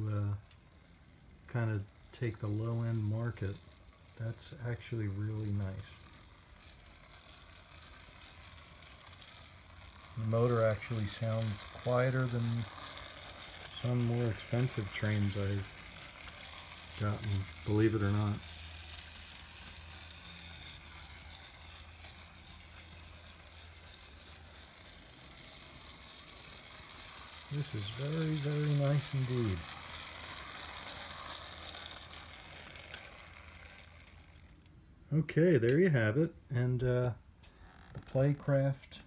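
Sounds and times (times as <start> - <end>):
wheels running on rails: 0.0 - 36.9
model train motor whirring: 0.0 - 39.0.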